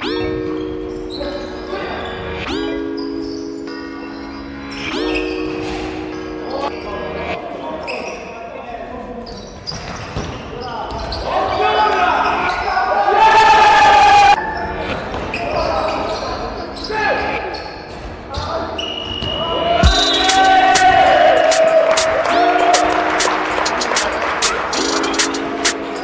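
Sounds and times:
players calling out: 18.8s - 26.0s.

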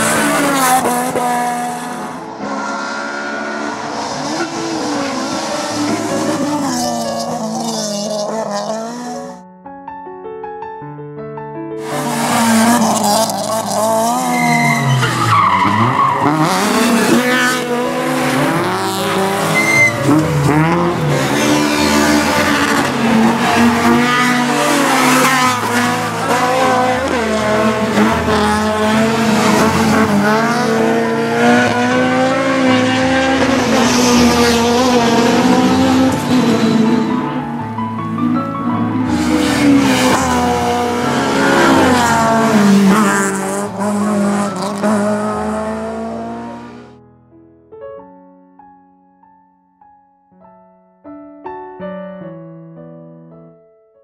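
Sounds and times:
car engine revving hard: 11.8s - 14.8s, 16.1s - 37.2s, 39.0s - 46.9s
background music: 14.9s - 49.7s.

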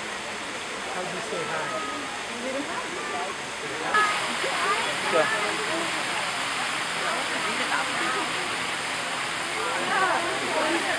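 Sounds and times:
people talking indistinctly: 0.8s - 10.9s.

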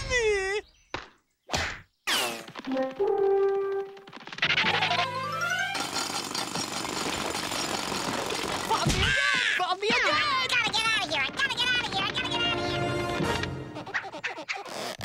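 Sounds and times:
brass notes: 2.6s - 4.0s, 12.4s - 13.9s
cartoon music score: 2.6s - 5.9s, 11.4s - 14.7s
clattering cartoon shovel digging: 5.6s - 8.9s.

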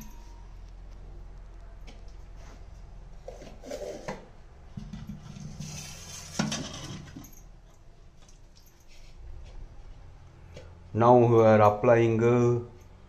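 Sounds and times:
metal clinks and scrapes: 4.8s - 9.3s.

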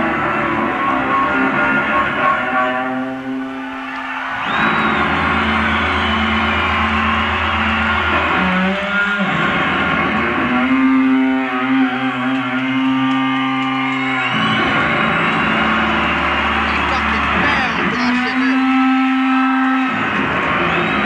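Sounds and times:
electric bass solo: 4.5s - 21.0s.

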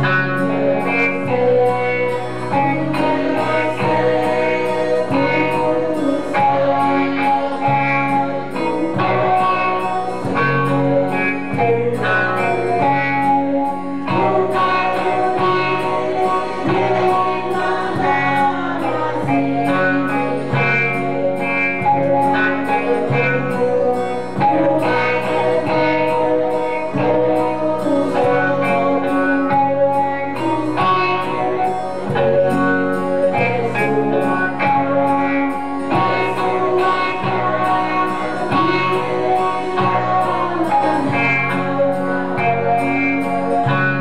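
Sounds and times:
strummed guitar: 0.0s - 44.0s
woman singing into a microphone: 0.0s - 44.0s.

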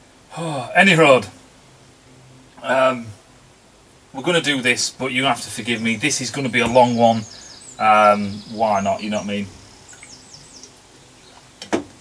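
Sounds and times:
small bird chirping: 5.2s - 11.7s.

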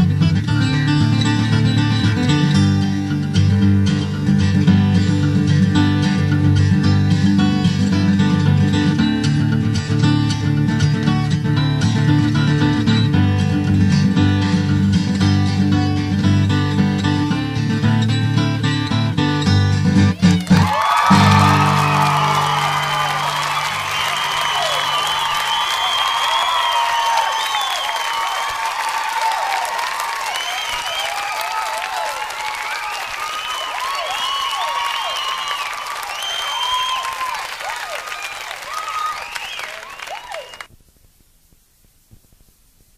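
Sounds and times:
audience applauding and cheering: 20.2s - 40.7s
guitar chord ringing: 21.1s - 25.2s.

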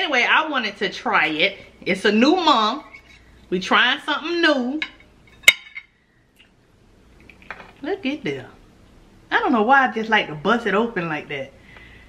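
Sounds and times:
knife clinking on tray: 4.8s - 5.9s.

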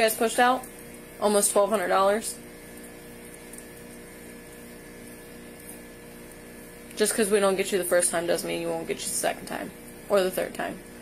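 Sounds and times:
machine hum with high whine: 0.0s - 11.0s.

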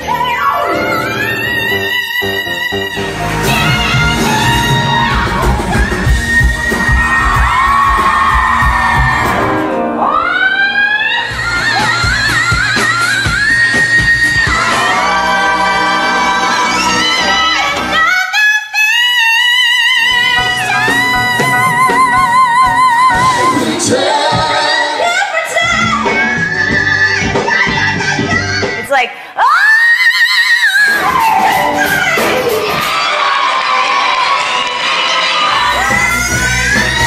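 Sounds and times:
live band with drum beat: 3.0s - 9.7s, 11.3s - 15.6s, 20.3s - 24.8s, 35.6s - 37.0s
audience cheering: 3.5s - 9.9s.

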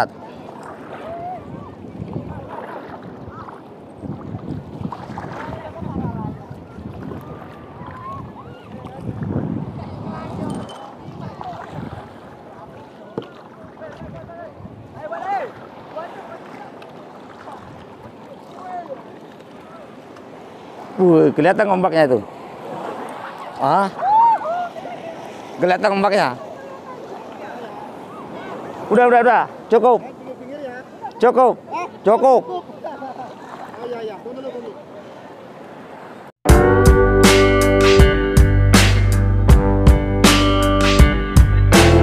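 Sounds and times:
water sloshing around boat: 0.0s - 36.3s
wind on microphone: 0.7s - 12.8s, 13.6s - 15.1s.

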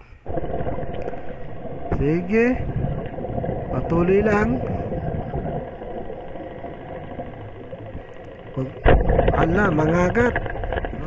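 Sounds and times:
muffled underwater rumble: 0.0s - 11.0s.

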